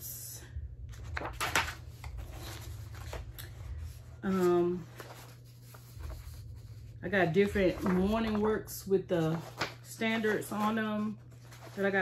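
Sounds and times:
steady low hum: 0.0 - 12.0
paper sheets rustling: 0.9 - 12.0.

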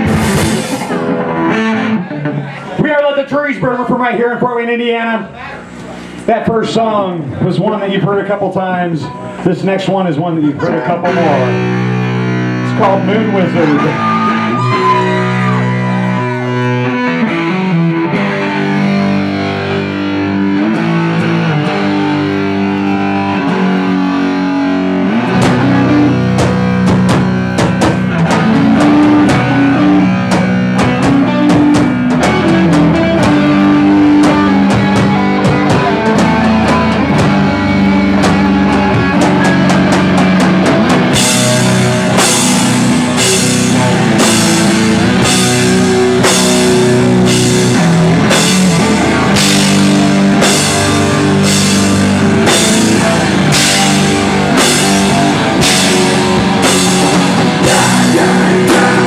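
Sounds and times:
drum kit: 0.0 - 2.8, 11.3 - 59.0
electric guitar held notes: 0.0 - 2.8, 10.6 - 59.0
bass guitar: 0.0 - 59.0.

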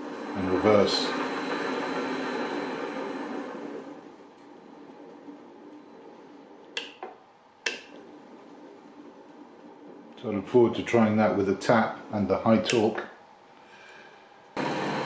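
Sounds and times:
drill motor winding down: 0.0 - 4.6, 14.6 - 15.0.

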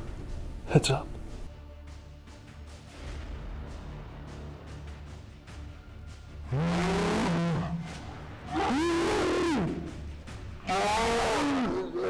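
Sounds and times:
men yelling with effort: 10.6 - 12.0.

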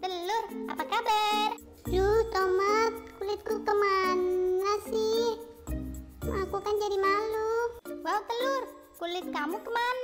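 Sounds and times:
children's background music: 0.0 - 10.0.

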